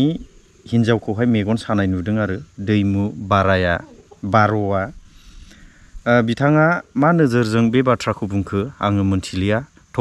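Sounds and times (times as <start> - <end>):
man speaking: 0.0 - 5.0, 6.0 - 10.0.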